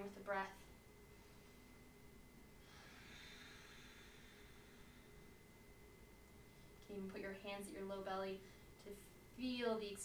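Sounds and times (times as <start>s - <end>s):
faint slow inhale: 2.5s - 5.8s, 6.4s - 6.8s, 8.4s - 8.8s.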